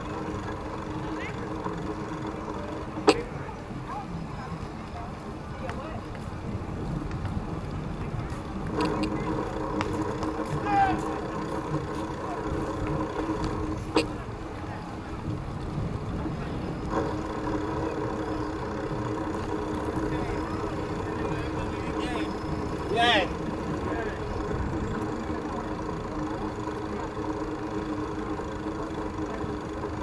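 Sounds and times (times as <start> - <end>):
mechanical hum: 0.0 - 4.5, 8.3 - 30.0
faint voices: 0.0 - 30.0
low rumble: 6.0 - 30.0.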